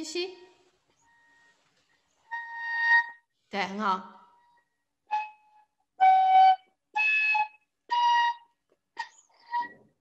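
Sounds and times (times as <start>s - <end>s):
wooden flute notes: 1.0s - 3.3s, 4.3s - 10.0s.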